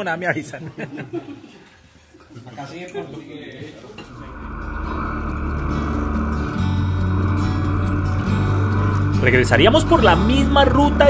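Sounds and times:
motorcycle engine running: 0:04.1 - 0:11.0.

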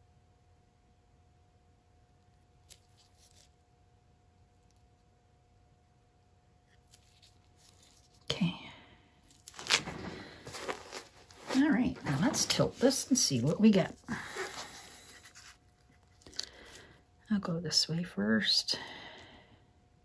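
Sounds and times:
faint electrical hum: 0:00.0 - 0:20.0
rustling and knocking of tools: 0:09.3 - 0:16.2.

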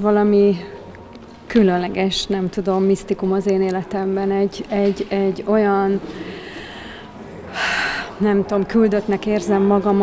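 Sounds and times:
woman breathing: 0:06.0 - 0:08.2.

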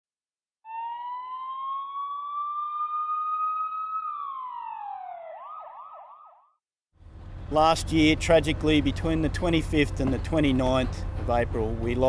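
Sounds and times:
police siren wailing: 0:00.7 - 0:06.5.

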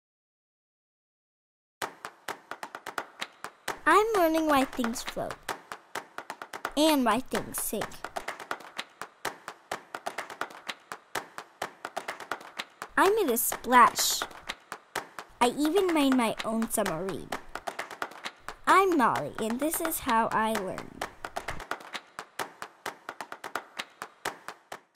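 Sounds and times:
percussion claps and taps: 0:01.8 - 0:24.9.

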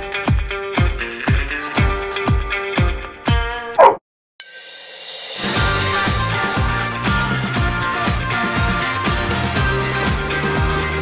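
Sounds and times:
bright high ding: 0:04.4 - 0:05.6.

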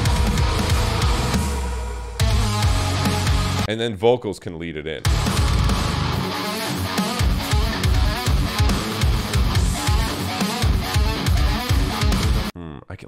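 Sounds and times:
heavy metal guitars and bass: 0:00.0 - 0:03.7, 0:05.0 - 0:12.5
lead guitar line: 0:00.0 - 0:03.7, 0:05.0 - 0:12.5.

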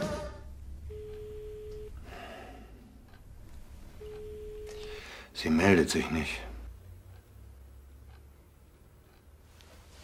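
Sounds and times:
telephone ringing tone beeps: 0:00.9 - 0:02.0, 0:04.0 - 0:05.0.

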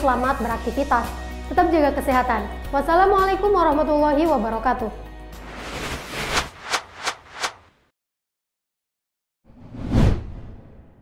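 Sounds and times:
whoosh sound effect: 0:05.4 - 0:07.7.

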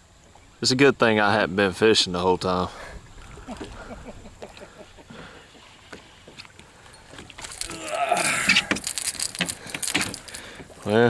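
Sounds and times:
fish splashing and thrashing: 0:03.0 - 0:11.0.

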